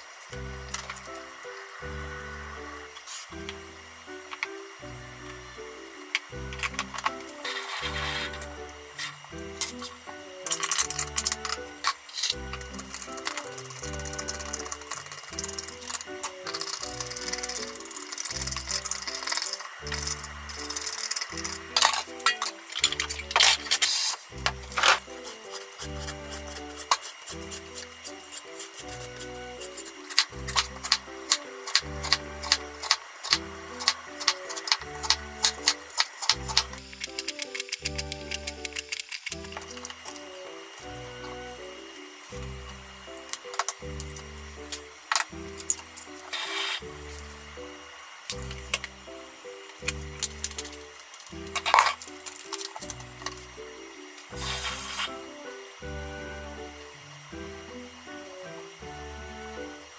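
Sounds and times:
peeler scraping root skin: 0:07.0 - 0:40.2, 0:43.6 - 0:46.9, 0:54.4 - 0:55.2.

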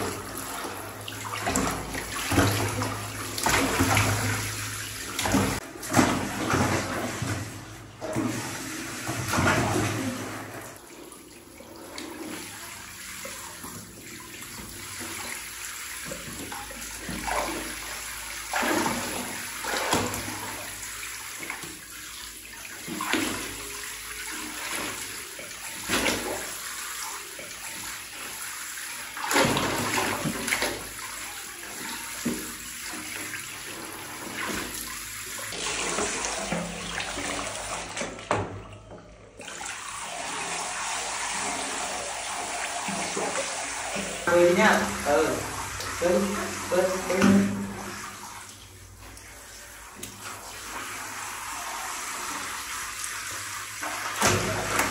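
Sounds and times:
shower water spraying into bathtub: 0:00.0 - 0:38.1, 0:39.4 - 0:54.9
water splashing: 0:00.0 - 0:54.9.

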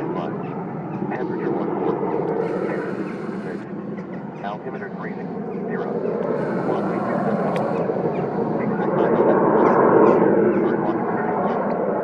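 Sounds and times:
jet engine flying overhead: 0:00.0 - 0:12.0.

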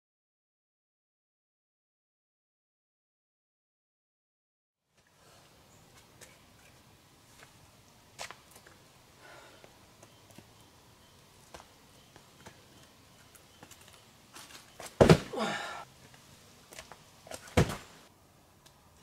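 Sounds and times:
thud of landing on ground: 0:14.4 - 0:15.5, 0:17.3 - 0:17.9
climber grunting: 0:15.0 - 0:15.9
shoes and hands scuffing rock: 0:16.7 - 0:18.0.

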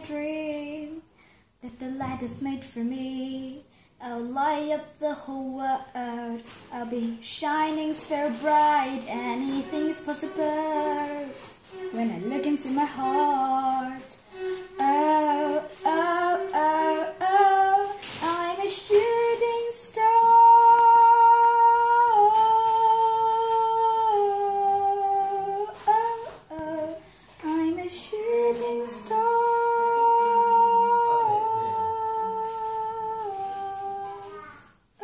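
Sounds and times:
girl singing: 0:00.0 - 0:35.0.

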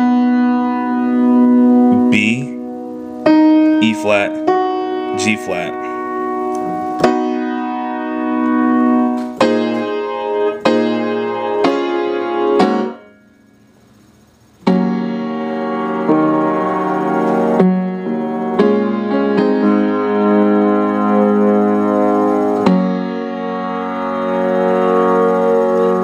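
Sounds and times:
piano playing sustained chords: 0:00.0 - 0:26.0.

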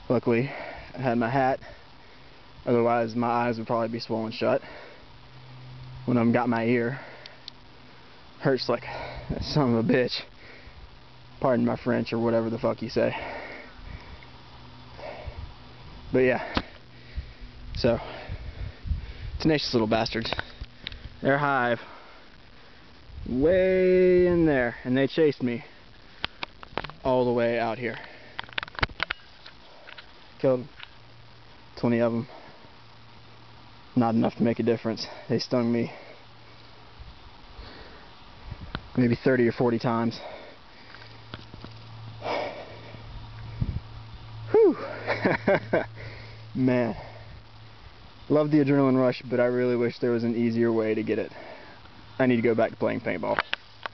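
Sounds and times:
man breathing heavily through nose: 0:00.4 - 0:02.6, 0:04.5 - 0:05.7, 0:06.8 - 0:09.6, 0:10.2 - 0:11.2, 0:13.0 - 0:19.4, 0:20.3 - 0:23.2, 0:25.6 - 0:26.5, 0:27.8 - 0:28.6, 0:32.2 - 0:33.5, 0:35.0 - 0:38.8, 0:40.1 - 0:41.5, 0:42.1 - 0:43.9, 0:45.9 - 0:48.2, 0:51.3 - 0:52.2
faint clicks: 0:26.2 - 0:27.0.

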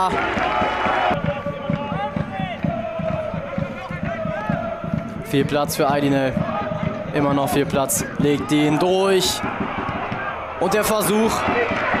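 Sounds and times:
crowd noise: 0:00.0 - 0:12.0
dull thuds of running and ball: 0:06.4 - 0:10.4, 0:11.3 - 0:12.0.

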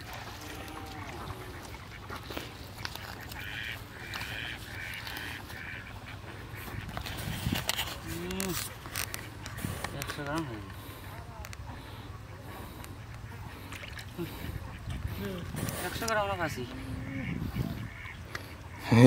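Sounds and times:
ducks quacking: 0:00.0 - 0:19.0.

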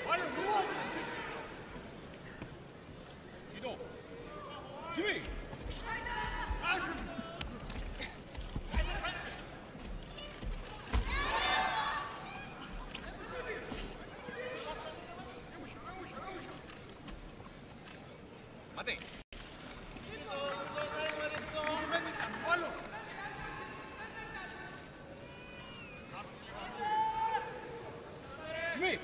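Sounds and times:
arena background noise: 0:00.0 - 0:29.0.

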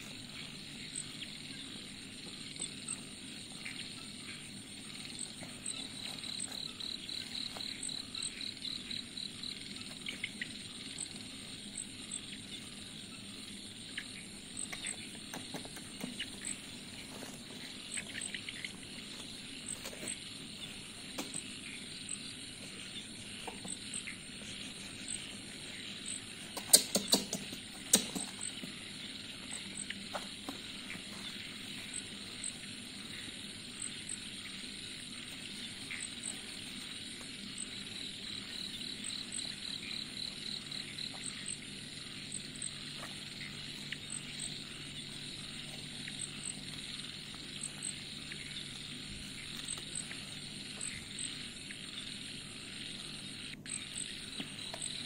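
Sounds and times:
faint high chirp: 0:00.0 - 0:27.2
insect trill: 0:00.0 - 0:55.0
insects: 0:00.0 - 0:55.0.

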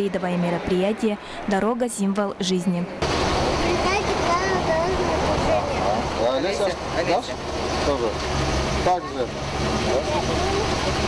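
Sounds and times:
children and adults talking: 0:00.0 - 0:11.0
truck engine idling: 0:03.0 - 0:11.0.

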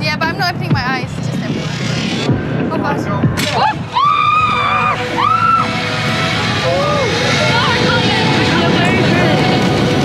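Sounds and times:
wind noise on microphone: 0:00.0 - 0:10.0
people screaming and whooping: 0:03.4 - 0:08.6.

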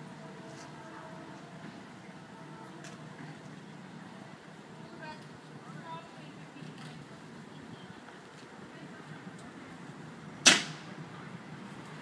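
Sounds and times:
faint background noise: 0:00.0 - 0:12.0
sharp bang: 0:10.4 - 0:10.9.

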